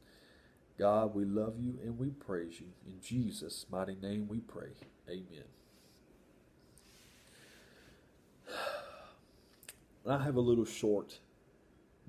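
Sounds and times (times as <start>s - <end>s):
man breathing in: 0.0s - 0.6s, 6.8s - 9.6s
mouth click: 9.5s - 9.9s.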